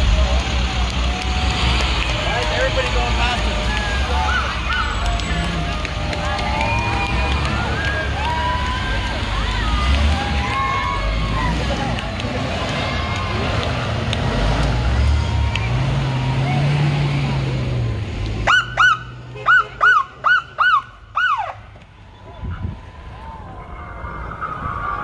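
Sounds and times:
bus engine rumble: 0:00.0 - 0:25.0
people shouting and cheering: 0:00.0 - 0:25.0
police siren whoops: 0:01.2 - 0:13.6, 0:14.7 - 0:17.0, 0:18.5 - 0:25.0.

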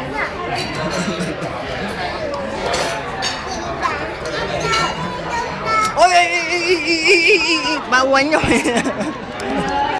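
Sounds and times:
adults talking: 0:00.0 - 0:09.9
young child talking: 0:03.6 - 0:06.1.

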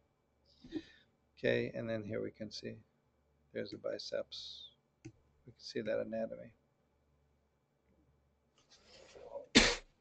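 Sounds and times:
man sneezing: 0:09.5 - 0:09.9.

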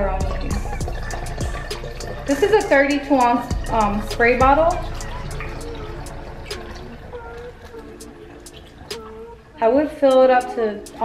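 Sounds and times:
water trickling through funnel: 0:00.0 - 0:11.0.

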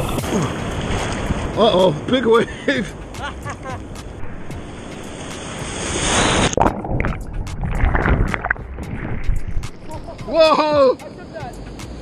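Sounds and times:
ocean wave whitewater rush: 0:00.0 - 0:11.4
muffled underwater sloshing: 0:06.4 - 0:10.4.

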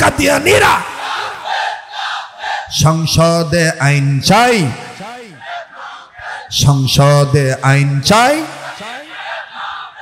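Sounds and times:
man shouting through pa: 0:00.0 - 0:01.0
crowd shouting: 0:00.1 - 0:02.8, 0:04.6 - 0:06.6, 0:08.3 - 0:10.0
crowd hubbub: 0:08.4 - 0:10.0.

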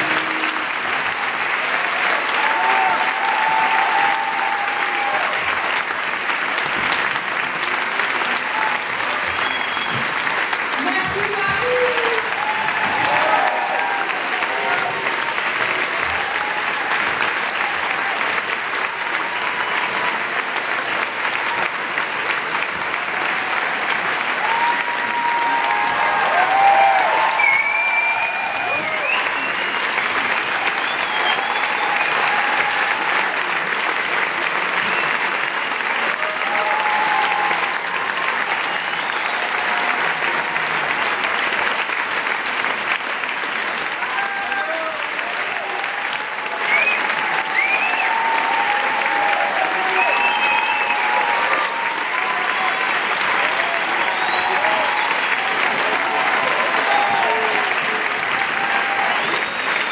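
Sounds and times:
crowd cheering and shouting: 0:00.0 - 0:06.0, 0:06.6 - 0:21.9, 0:22.6 - 0:33.8, 0:34.7 - 0:41.3, 0:43.8 - 0:59.9
audience applauding: 0:00.0 - 0:59.9.

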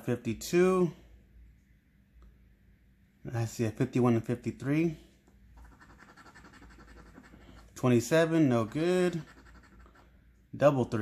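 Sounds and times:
coin scratching lottery ticket: 0:05.6 - 0:10.1.

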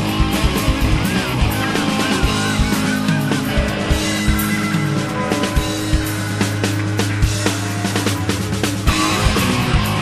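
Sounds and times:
guitars: 0:00.0 - 0:10.0
steady drum beat: 0:00.0 - 0:10.0
wavering lead guitar line: 0:00.0 - 0:10.0.

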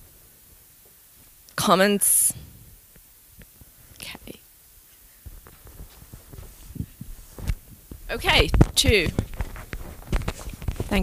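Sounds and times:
microphone handling thumps and clicks: 0:05.2 - 0:11.0.

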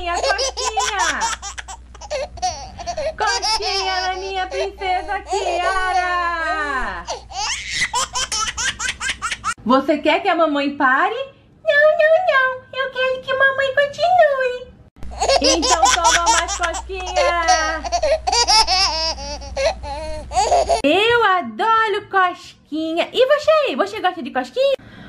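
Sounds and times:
woman speaking: 0:00.0 - 0:01.4, 0:02.9 - 0:07.2, 0:09.6 - 0:14.7, 0:15.3 - 0:18.0, 0:20.8 - 0:24.8
high-pitched childlike giggling: 0:00.1 - 0:04.4, 0:15.2 - 0:19.8
woman giggling: 0:02.8 - 0:07.2, 0:15.2 - 0:18.4.

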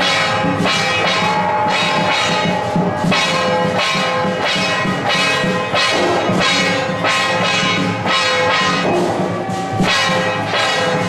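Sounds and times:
gongs and cymbals struck: 0:00.0 - 0:11.0.

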